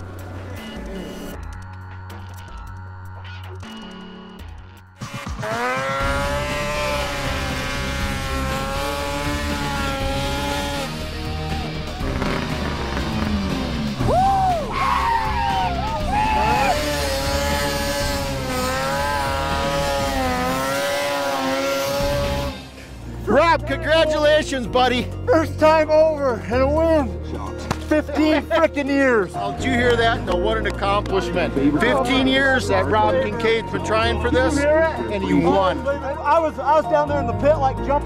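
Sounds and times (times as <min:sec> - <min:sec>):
snowmobile engine at high revs: 0:05.0 - 0:14.2, 0:16.0 - 0:22.7.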